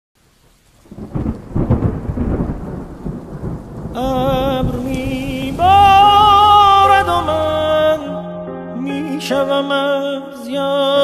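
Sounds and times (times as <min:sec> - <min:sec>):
rain falling: 0:00.2 - 0:07.8
thunder rumbling and crackling: 0:00.8 - 0:07.8.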